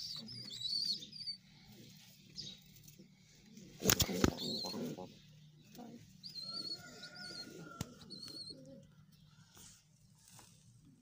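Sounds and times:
bird chirping: 0.0s - 3.0s, 4.2s - 9.8s
pigeon cooing: 3.7s - 9.1s.

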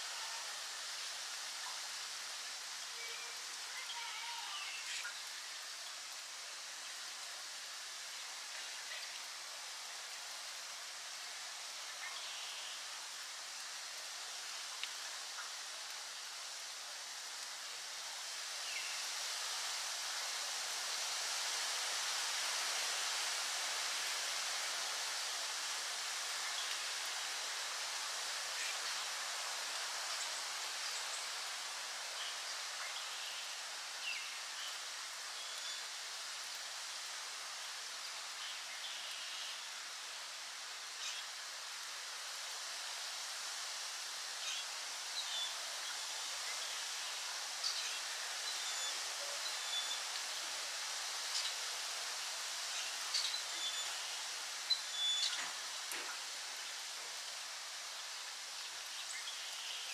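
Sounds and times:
steady woodland hiss: 0.0s - 59.9s.

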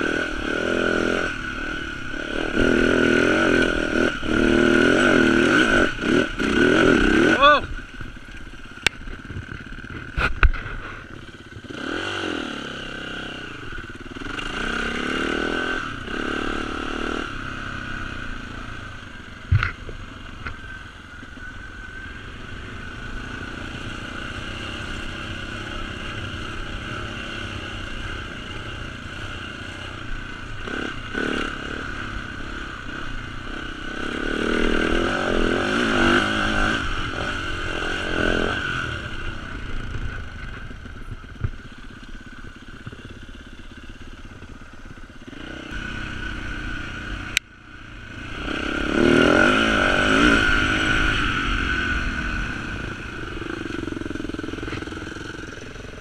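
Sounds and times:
dirt bike engine revving: 0.0s - 20.8s, 21.4s - 56.0s.

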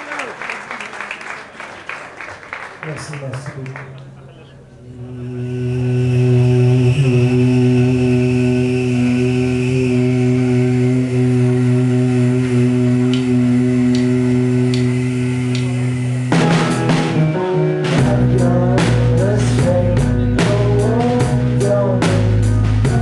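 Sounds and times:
band droning note: 4.0s - 23.0s.

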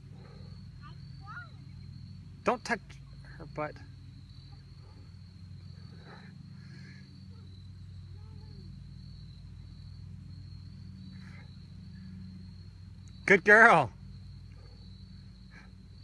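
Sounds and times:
high-pitched insect chorus: 0.0s - 16.0s
low steady hum: 0.0s - 16.0s.

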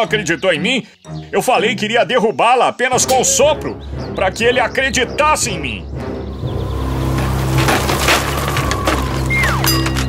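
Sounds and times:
cartoon house collapsing crash: 6.7s - 10.0s.

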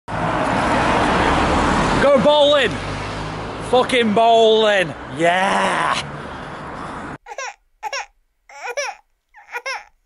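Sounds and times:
road traffic roar: 0.1s - 7.2s.

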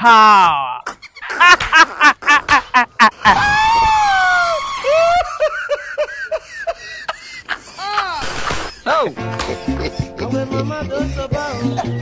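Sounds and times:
high-pitched cackling laughter: 0.8s - 3.5s, 4.5s - 8.8s, 9.4s - 10.3s, 11.4s - 12.0s
person's high-pitched falling cry: 3.2s - 5.4s, 7.8s - 8.2s.

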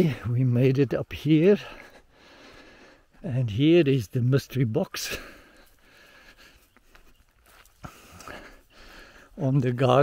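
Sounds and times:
footsteps through grass: 5.2s - 10.0s.

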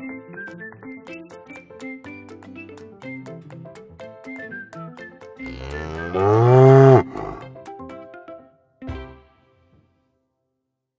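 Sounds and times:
cow mooing: 5.5s - 7.4s.

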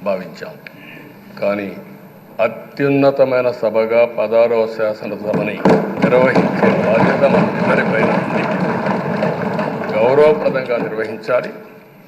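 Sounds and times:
man speaking: 0.0s - 8.4s, 9.9s - 11.7s.

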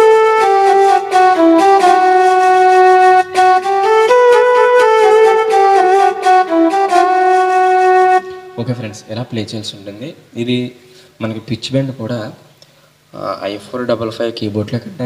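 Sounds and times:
electronic keyboard flute melody: 0.0s - 9.2s.

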